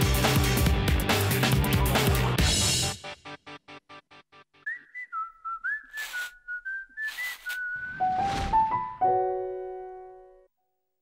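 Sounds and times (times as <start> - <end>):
whistled melody: 4.6 - 9.1.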